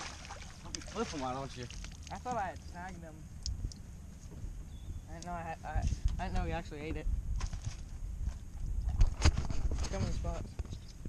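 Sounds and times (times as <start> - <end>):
wind rumble on microphone: 3.1 - 11.0.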